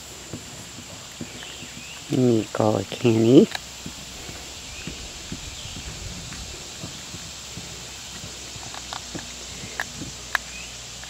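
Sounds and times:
wolf crunching while feeding: 0.0s - 11.0s.

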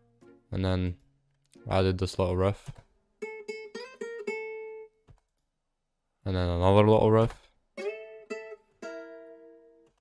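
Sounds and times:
guitar riff with reverb: 3.2s - 5.0s, 7.8s - 9.9s.

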